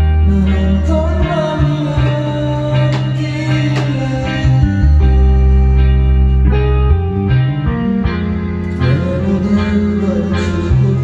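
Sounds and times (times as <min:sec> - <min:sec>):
held bass line: 0:00.0 - 0:11.0
strummed guitar chords: 0:00.0 - 0:11.0.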